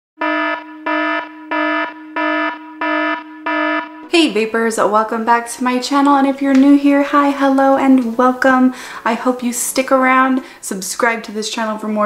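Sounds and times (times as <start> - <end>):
electronic alarm beeping: 0.2 - 4.1.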